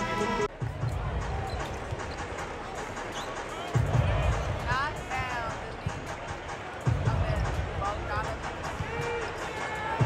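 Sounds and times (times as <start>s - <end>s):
arena music playing: 0.0s - 10.0s
crowd murmur: 0.0s - 10.0s.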